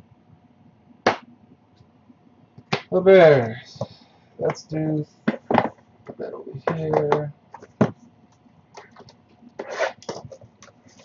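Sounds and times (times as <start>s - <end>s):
sharp hand smack: 1.1s - 1.3s.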